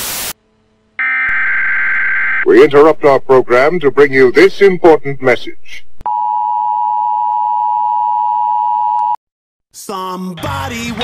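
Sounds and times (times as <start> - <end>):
loud high-pitched tone: 1.0 - 2.4.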